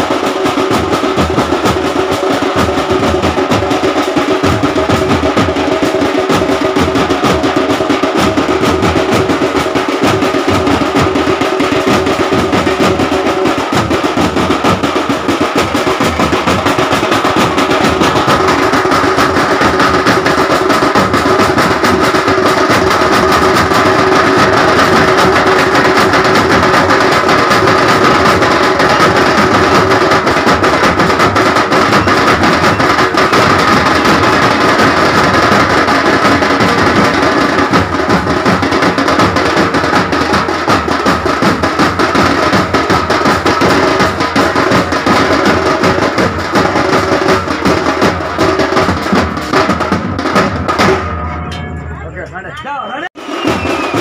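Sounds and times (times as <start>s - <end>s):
fast drumming: 0.0s - 54.0s.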